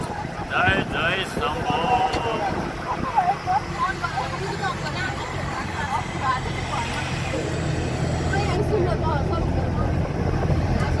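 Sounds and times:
bus engine and road noise: 0:00.0 - 0:11.0
passengers talking: 0:00.0 - 0:11.0.

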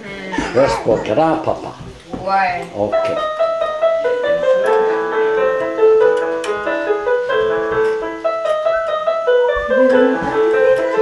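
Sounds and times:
electronic keyboard piano melody: 0:02.8 - 0:11.0.

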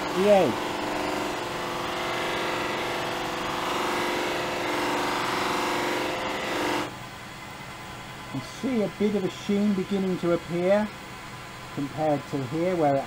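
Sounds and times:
lathe humming: 0:00.0 - 0:07.0
dust extractor humming: 0:00.0 - 0:13.0.

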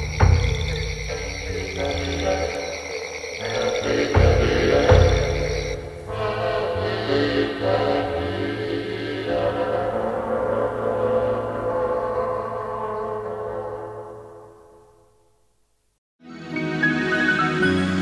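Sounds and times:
slow ambient instrumental music: 0:16.2 - 0:18.0.

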